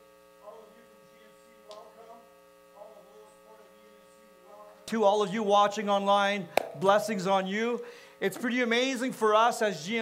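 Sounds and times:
sound system electrical hum: 0.0s - 10.0s.

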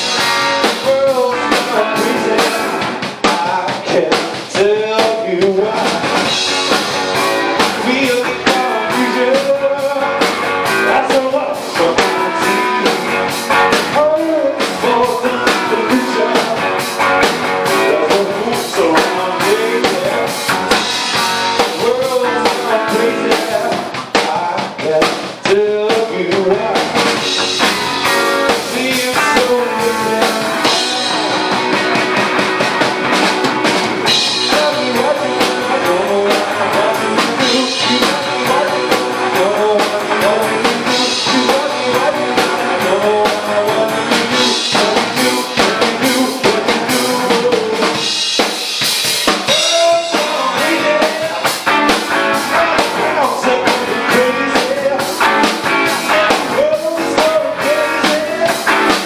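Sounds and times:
man singing: 0.0s - 32.8s, 34.0s - 48.5s, 49.2s - 59.0s
drum kit beat: 0.0s - 59.0s
electric guitars: 0.0s - 59.0s.

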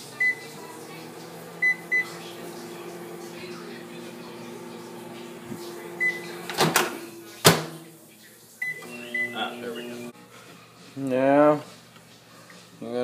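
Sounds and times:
microwave oven humming: 0.0s - 7.2s, 8.6s - 10.1s.

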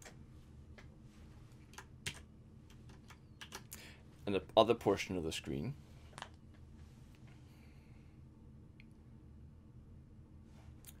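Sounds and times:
computer keyboard keystrokes: 1.7s - 3.8s.

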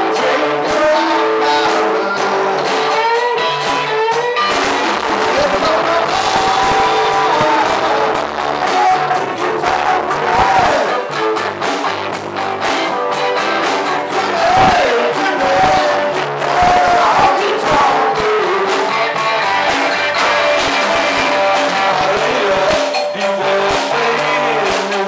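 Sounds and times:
drum kit beat: 0.0s - 25.0s
electric guitar: 0.0s - 25.0s
live rock band playing: 0.0s - 25.0s.

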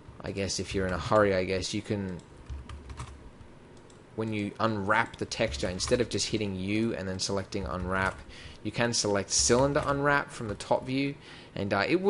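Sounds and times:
keyboard keys clicking: 2.1s - 3.2s.

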